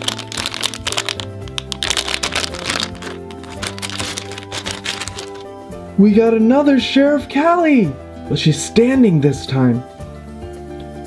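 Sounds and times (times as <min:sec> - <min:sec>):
foil bag crinkling: 0:00.0 - 0:05.5
background music: 0:00.0 - 0:11.0.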